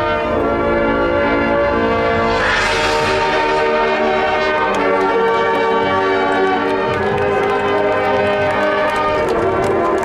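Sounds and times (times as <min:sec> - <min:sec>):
brass chords: 0:00.0 - 0:10.0.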